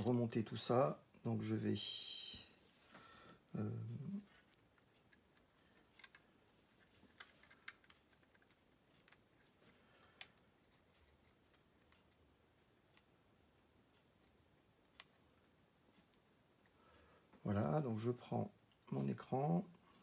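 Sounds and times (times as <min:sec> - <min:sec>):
plastic parts clicking and tapping: 0:04.3 - 0:12.2.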